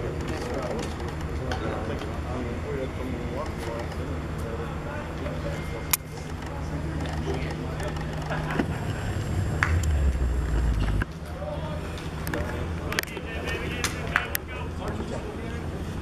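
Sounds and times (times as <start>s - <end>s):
faint indistinct voices: 0.0s - 16.0s
low rumble: 8.0s - 11.5s.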